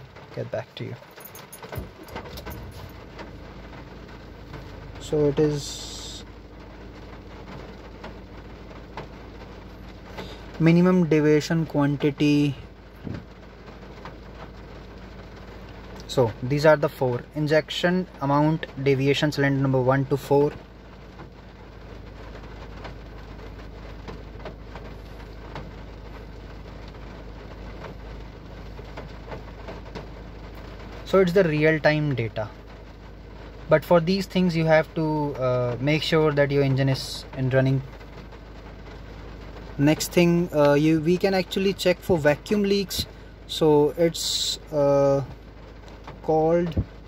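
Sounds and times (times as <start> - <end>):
diesel engine idling: 0.0 - 22.1, 30.2 - 47.0.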